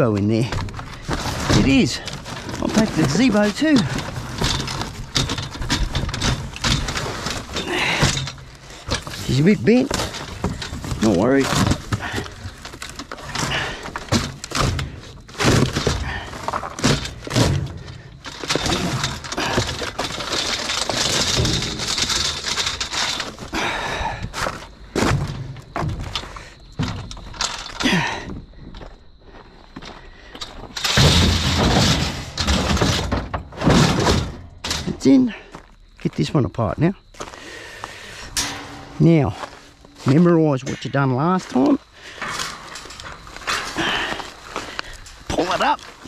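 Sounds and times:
metal knocks and clanks in dumpster: 0.0s - 29.0s, 29.7s - 35.6s, 38.1s - 46.0s
cardboard scraping and rustling: 0.3s - 7.6s.

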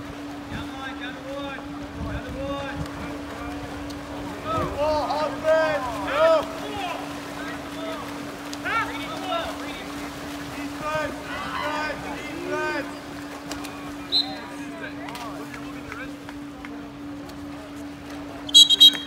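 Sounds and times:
steady low hum: 0.0s - 19.0s
swimmers splashing: 0.0s - 19.0s
spectators yelling: 10.9s - 12.9s.

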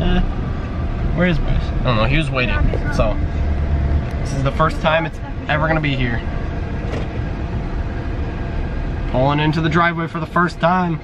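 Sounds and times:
car interior road and engine noise: 0.0s - 11.0s.

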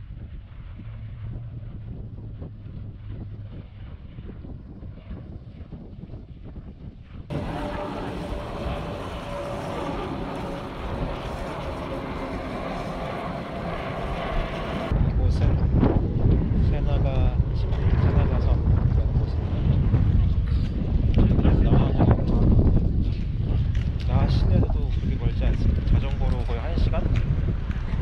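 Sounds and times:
jet airliner flying low: 0.0s - 28.0s
wind rumbling on microphone: 0.0s - 28.0s.

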